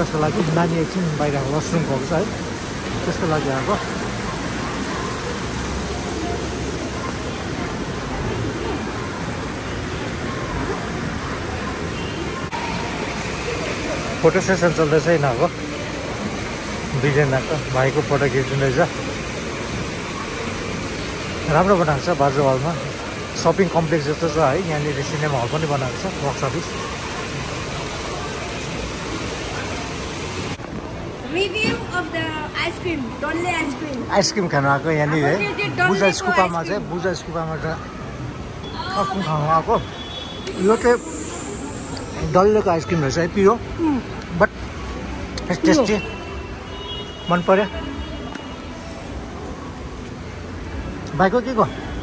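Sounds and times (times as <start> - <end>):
fountain jets splashing: 0.0 - 52.0.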